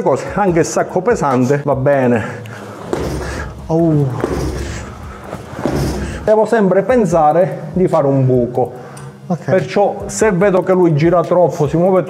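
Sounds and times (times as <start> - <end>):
kick thudding on punching bag: 2.8 - 6.3.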